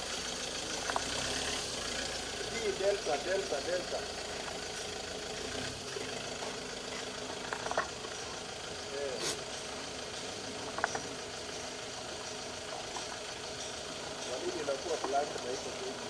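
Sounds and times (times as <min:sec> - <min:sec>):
engine idling hum: 0:00.0 - 0:16.0.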